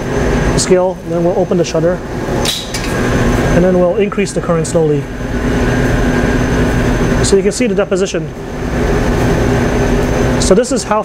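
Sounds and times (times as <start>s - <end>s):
machine hum: 0.0s - 11.0s.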